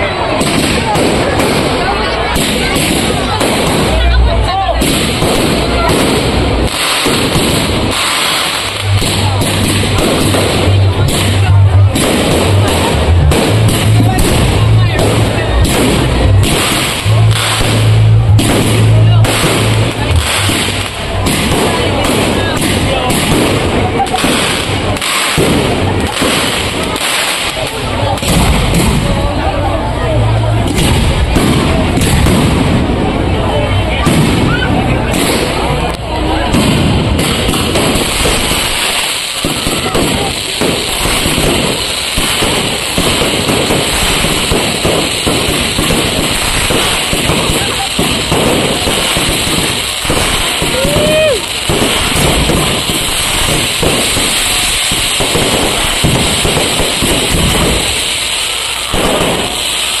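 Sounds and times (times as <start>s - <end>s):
fireworks bangs and crackling: 0.0s - 60.0s.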